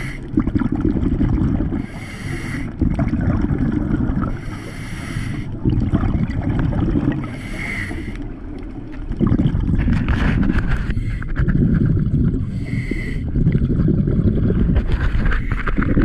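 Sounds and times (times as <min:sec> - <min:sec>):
hissing regulator inhalation: 0:00.0 - 0:00.3, 0:01.7 - 0:02.8, 0:04.2 - 0:05.6, 0:07.2 - 0:08.3, 0:12.5 - 0:13.3
exhaled bubbles rumbling: 0:00.0 - 0:16.0.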